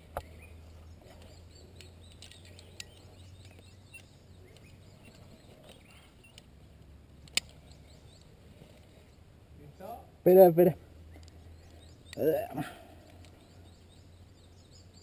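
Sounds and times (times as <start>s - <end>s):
faint bird chirps: 0.0s - 6.5s.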